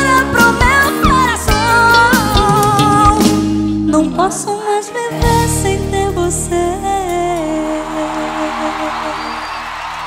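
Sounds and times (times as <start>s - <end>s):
crowd noise: 7.6s - 10.0s.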